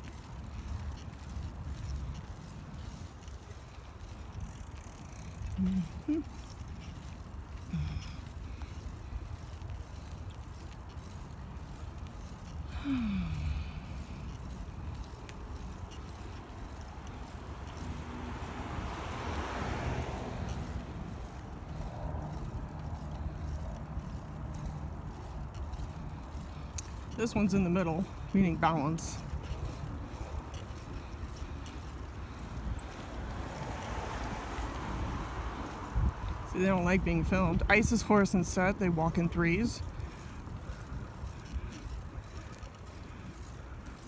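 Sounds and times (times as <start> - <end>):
bicycle tyres rolling on pavement: 0.0 - 44.0
car passing: 0.0 - 44.0.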